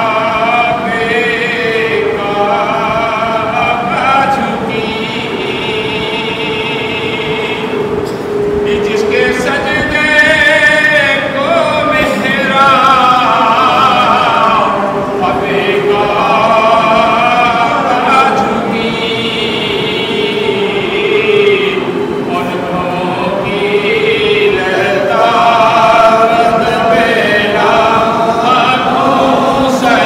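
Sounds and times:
man chanting into a microphone: 0.0s - 8.0s, 8.6s - 30.0s.

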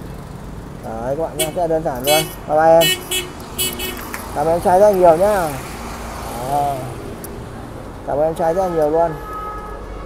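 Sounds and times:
roadside traffic: 0.0s - 10.0s
man's voice: 0.8s - 3.0s, 4.3s - 5.7s, 6.3s - 7.0s.

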